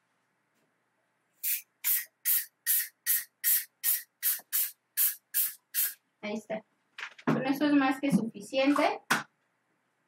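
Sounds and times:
spray can hissing: 1.4s - 6.0s.

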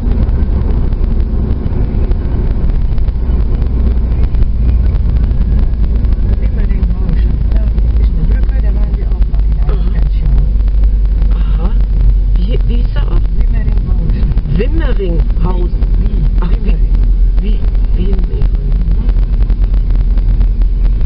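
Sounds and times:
car interior rumble: 0.0s - 21.0s
indistinct voices: 0.0s - 21.0s.

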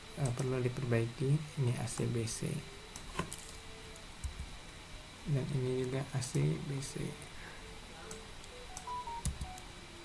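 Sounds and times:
computer keyboard and mouse clicks: 8.1s - 9.6s.

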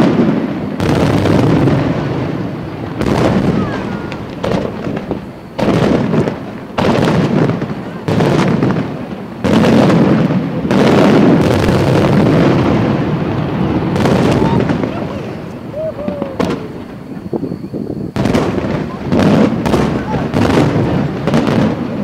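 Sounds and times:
firework shells bursting: 0.0s - 22.0s.

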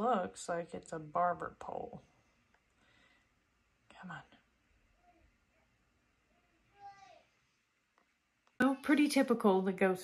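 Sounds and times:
woman speaking quietly: 3.9s - 4.4s.

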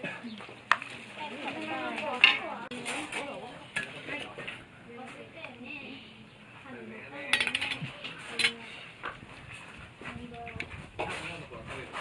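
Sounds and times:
children chattering: 1.0s - 8.9s.

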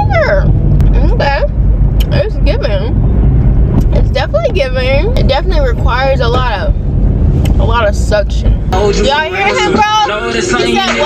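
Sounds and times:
car road and engine rumble: 0.0s - 11.0s
song with vocal and instruments: 8.7s - 11.0s
woman singing: 8.8s - 11.0s.

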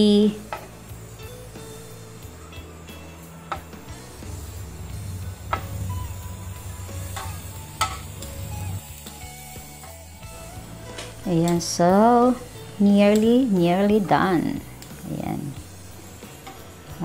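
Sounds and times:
squid sizzling on grill pan: 0.0s - 17.0s
utensil clicking against pan: 13.1s - 13.4s.

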